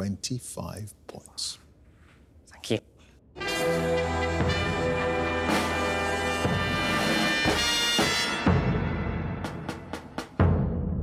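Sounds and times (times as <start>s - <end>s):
orchestral brass chords: 3.4s - 10.2s.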